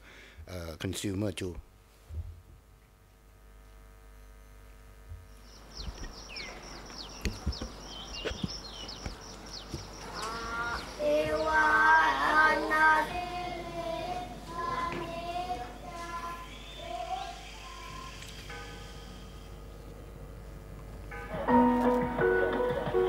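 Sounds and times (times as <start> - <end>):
birds chirping: 5.2 - 20.2.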